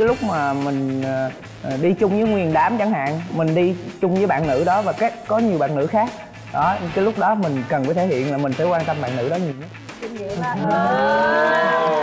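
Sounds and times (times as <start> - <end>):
women saying ooh: 10.3 - 12.0.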